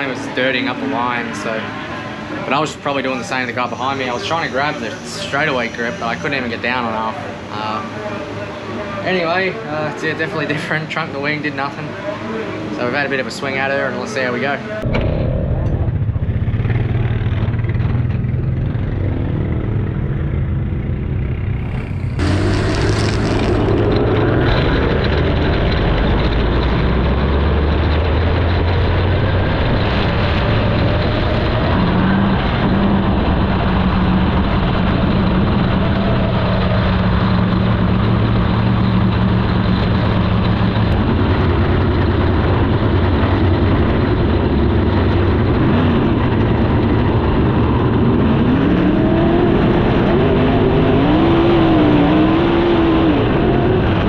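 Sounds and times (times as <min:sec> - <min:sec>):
race car engine: 0:00.0 - 0:54.0.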